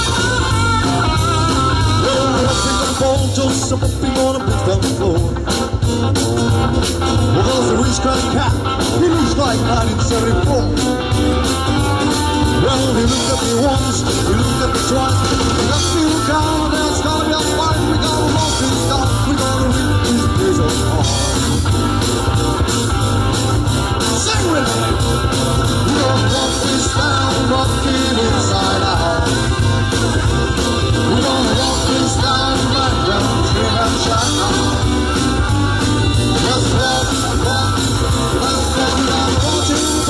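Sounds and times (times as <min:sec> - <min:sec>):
person singing: 0:00.0 - 0:05.4, 0:12.1 - 0:21.5, 0:24.0 - 0:29.7, 0:30.9 - 0:40.0
rock band playing: 0:00.0 - 0:40.0.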